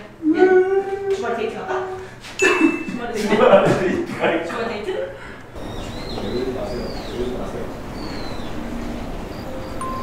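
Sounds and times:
birds chirping: 0:05.5 - 0:10.0.

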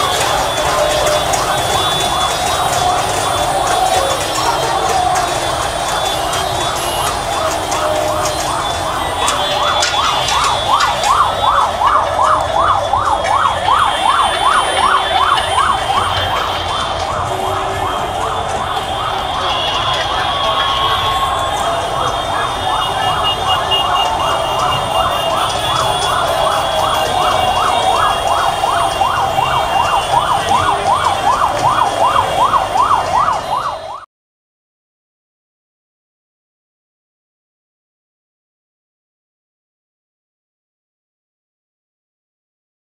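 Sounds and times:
electronic yelp siren: 0:00.0 - 0:34.1
large crowd noise: 0:00.0 - 0:34.1.

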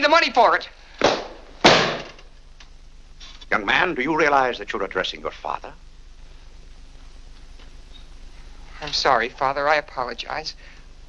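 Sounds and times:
book slapped shut: 0:01.0 - 0:02.2.

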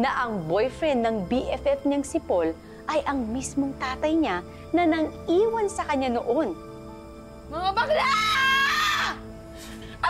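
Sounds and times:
dramatic background music: 0:00.0 - 0:10.0
woman screaming: 0:07.5 - 0:09.3.

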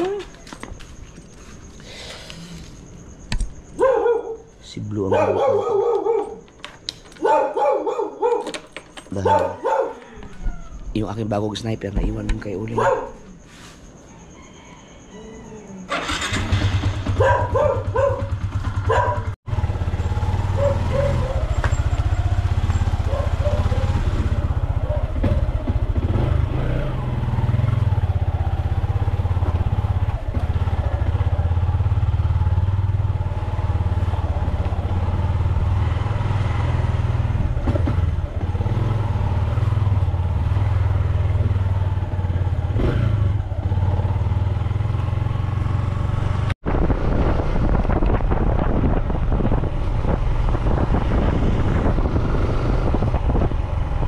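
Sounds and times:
motorcycle engine running: 0:15.9 - 0:54.0.

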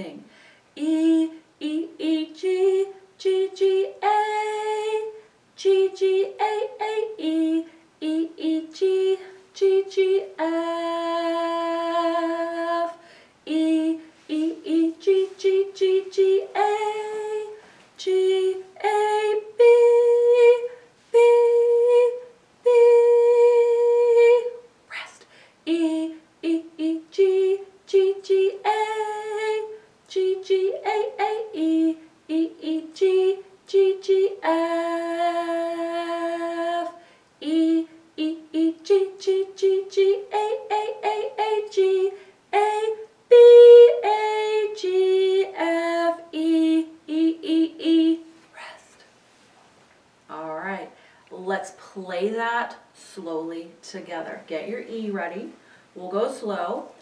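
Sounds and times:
woman singing unaccompanied: 0:00.0 - 0:49.0, 0:50.3 - 0:57.0.

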